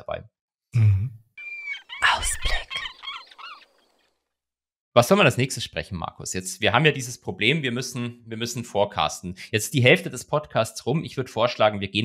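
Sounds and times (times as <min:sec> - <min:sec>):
gliding chirps: 0:01.4 - 0:04.0
man speaking: 0:05.0 - 0:12.0.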